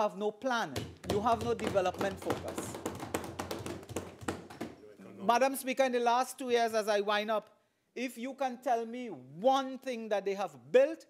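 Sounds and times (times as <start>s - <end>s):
hands pounding on wooden desks: 0.7s - 4.8s.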